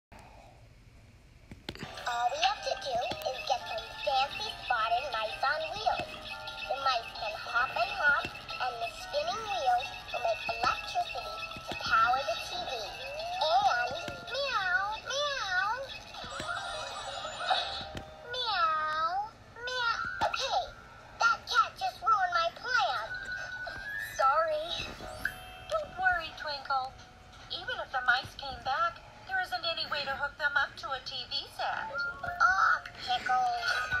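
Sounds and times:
children's jingle voices singing: 1.8s - 17.3s
children's tv jingle with voices: 1.8s - 34.0s.

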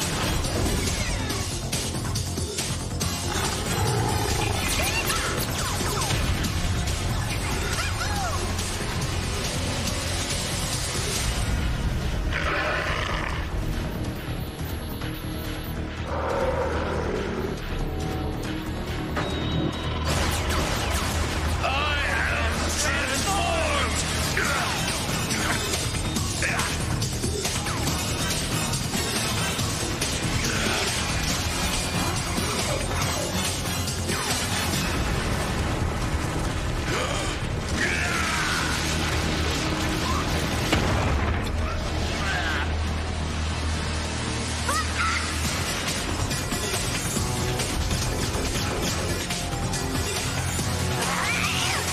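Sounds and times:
soundtrack music: 0.0s - 51.9s.

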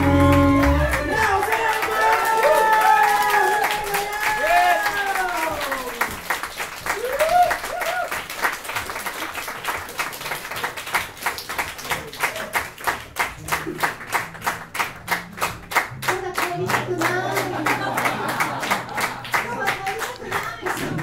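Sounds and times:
audience clapping in time: 0.0s - 21.0s.

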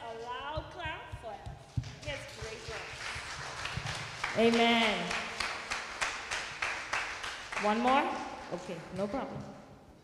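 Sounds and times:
dull low thumps: 0.3s - 4.2s.

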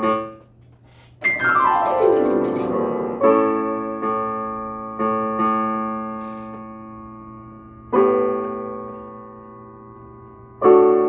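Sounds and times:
digital piano chord ringing: 1.2s - 11.0s.

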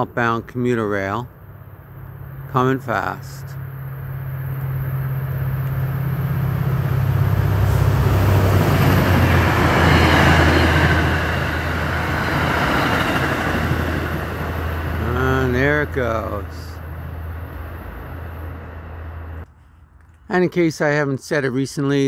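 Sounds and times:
locomotive engine drone: 0.0s - 19.5s
train wheels rumbling on rails: 2.0s - 19.4s.

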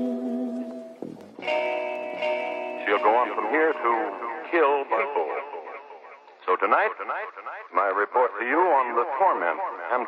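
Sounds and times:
thin telephone-like voice talking: 2.8s - 10.0s.

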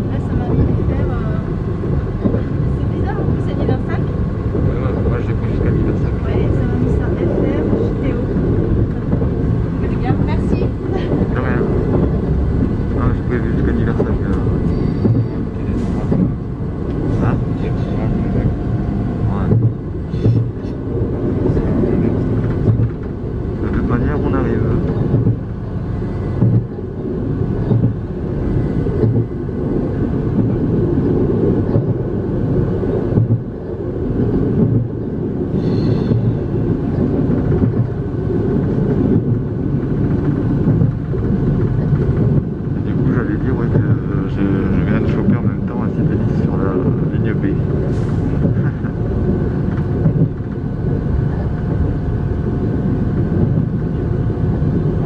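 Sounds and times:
railcar engine and wheels rumbling: 0.0s - 55.0s.

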